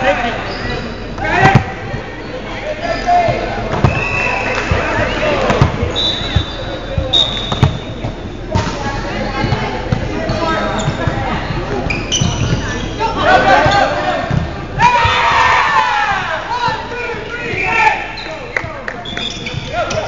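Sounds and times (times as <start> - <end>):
players talking: 0.0 - 20.0
high squeaks: 11.8 - 13.1.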